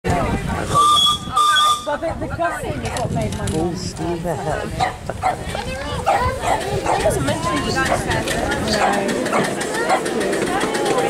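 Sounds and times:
steam whistle blasts: 0:00.7 - 0:02.0.

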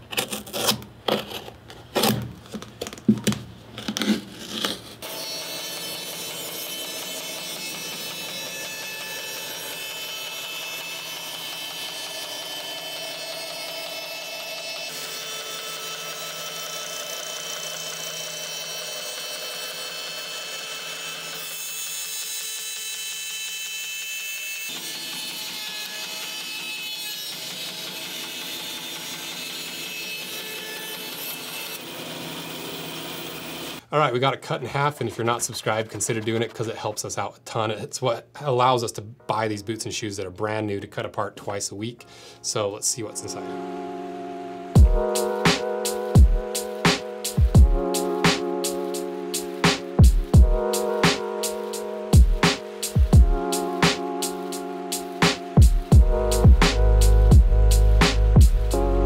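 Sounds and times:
hand tool scraping and clicking: 0:00.0 - 0:02.9
band saw cutting: 0:04.0 - 0:33.8, 0:34.7 - 0:37.0, 0:44.6 - 0:59.0.

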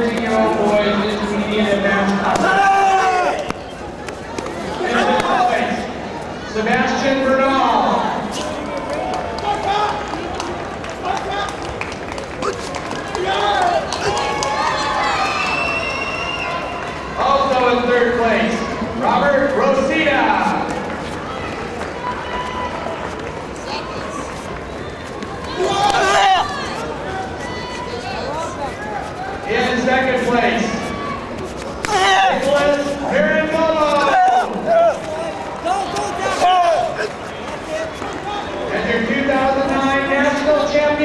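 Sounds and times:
crowd murmur in a hall: 0:00.0 - 0:41.0
loud shout: 0:02.3 - 0:03.5, 0:12.4 - 0:17.3, 0:25.4 - 0:28.4, 0:30.6 - 0:33.2, 0:33.8 - 0:37.2.

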